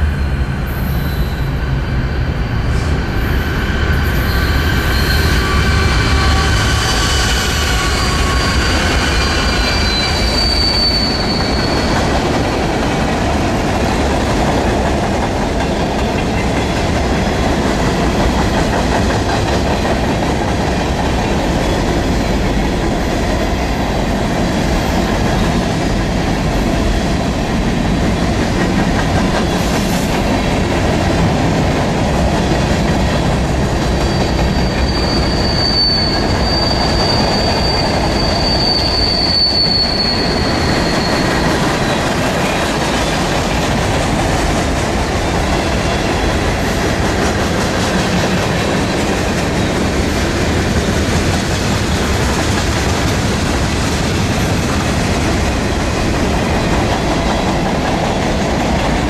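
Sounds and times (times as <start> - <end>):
high-pitched wheel squeal: 0.8 - 12.0, 34.0 - 42.1.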